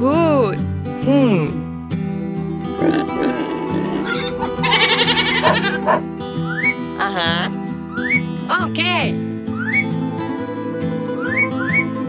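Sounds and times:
cartoon background music: 2.5s - 10.0s, 10.6s - 12.0s
rough grunting vocal effect: 2.7s - 6.0s
high vocal sound effect: 3.0s - 5.8s, 7.0s - 7.6s.

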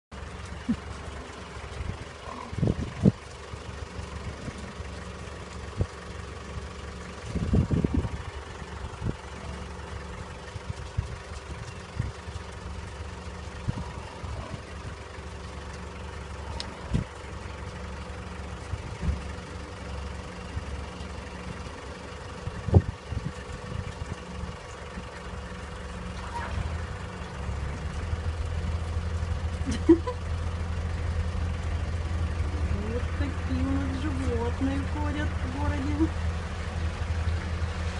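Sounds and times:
car engine idling: 0.0s - 37.9s.

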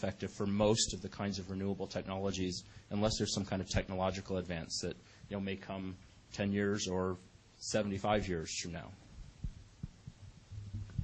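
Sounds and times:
low hum: 9.0s - 11.0s
soft low thumps: 9.2s - 11.0s.

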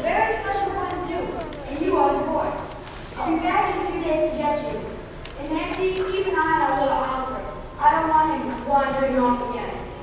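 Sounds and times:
young person speaking on stage: 0.0s - 10.0s.

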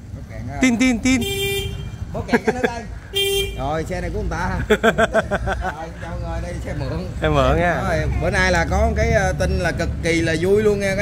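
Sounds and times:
motorbike horn beep: 1.1s - 2.1s, 3.2s - 3.7s.

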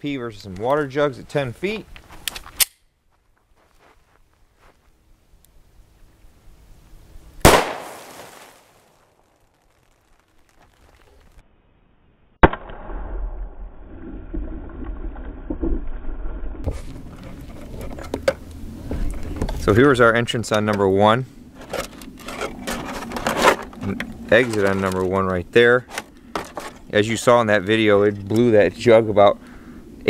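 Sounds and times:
pistol shot: 7.4s - 8.6s, 12.4s - 13.2s
muffled rumbling noise: 12.6s - 30.0s.

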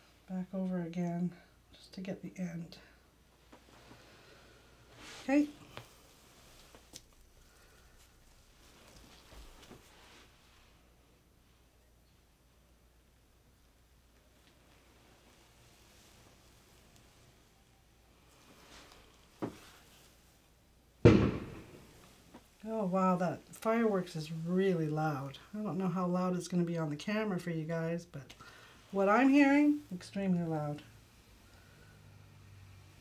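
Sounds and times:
loud firework bang: 21.0s - 22.0s
sharp firework pop: 21.0s - 22.0s.

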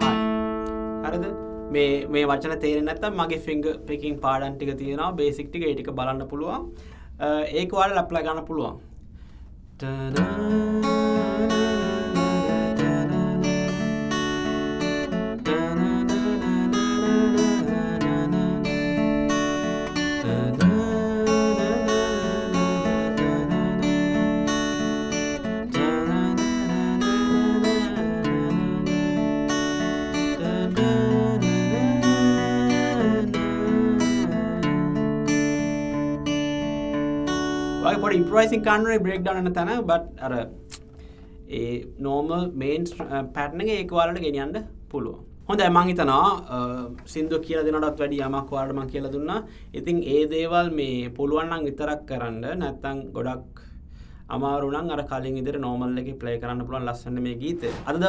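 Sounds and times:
fingerpicked acoustic guitar: 0.0s - 4.7s, 9.1s - 42.0s.

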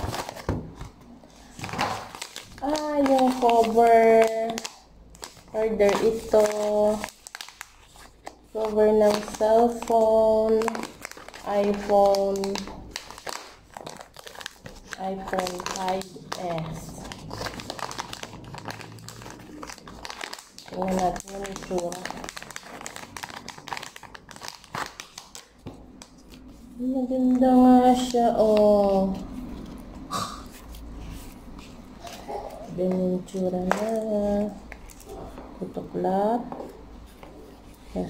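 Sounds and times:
plastic bag crinkling: 0.0s - 35.4s.

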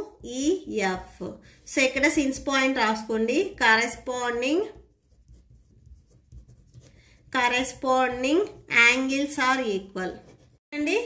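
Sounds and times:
pen scratching on paper: 3.4s - 10.6s.

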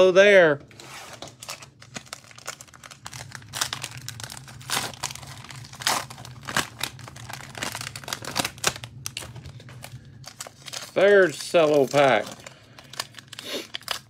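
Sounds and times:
foil wrapper crinkling: 1.1s - 14.0s
wrapper being torn open: 1.1s - 14.0s.

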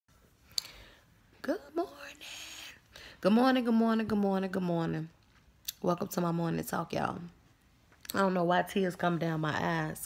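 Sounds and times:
woman speaking: 1.4s - 7.4s, 8.0s - 10.0s.

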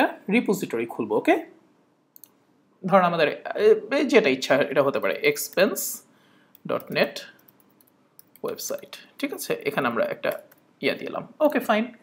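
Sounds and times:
computer mouse click: 2.1s - 2.4s, 6.5s - 8.9s.

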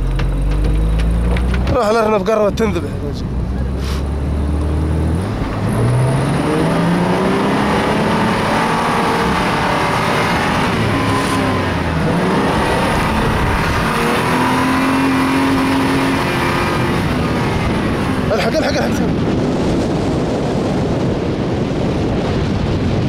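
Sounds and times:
vehicle engine revving: 0.0s - 21.0s
tyre and wind noise: 0.0s - 23.0s.

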